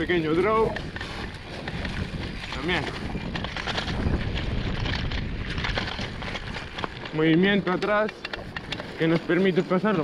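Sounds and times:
wind on microphone: 0:00.0 - 0:09.6
bike rattling and knocking: 0:00.0 - 0:10.0
tyres rolling on dirt and leaves: 0:00.0 - 0:10.0.

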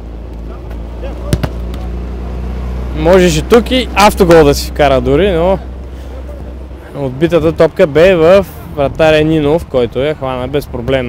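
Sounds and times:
football being kicked: 0:01.2 - 0:01.8.

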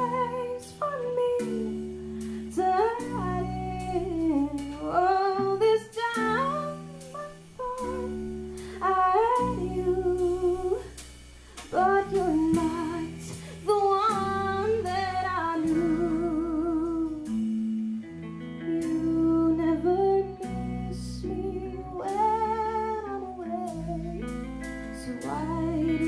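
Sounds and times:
woman singing with vibrato: 0:00.0 - 0:11.0, 0:11.6 - 0:18.0, 0:18.6 - 0:24.3, 0:24.9 - 0:26.0
drums: 0:00.0 - 0:26.0
guitars: 0:00.0 - 0:26.0.

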